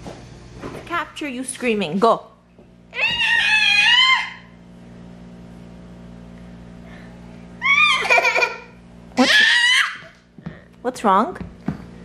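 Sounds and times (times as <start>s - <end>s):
toddler girl screaming: 2.9s - 4.6s, 7.6s - 8.4s, 9.2s - 10.1s.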